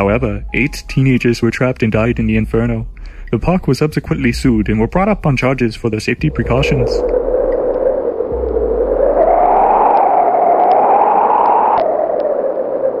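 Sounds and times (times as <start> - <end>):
low rumble: 0.0 - 11.6
hollow wind-like whoosh: 6.2 - 11.8.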